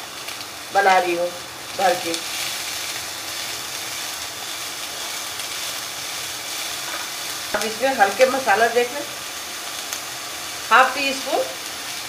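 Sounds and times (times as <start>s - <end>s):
vegetables sizzling in hot oil: 0.0s - 12.0s.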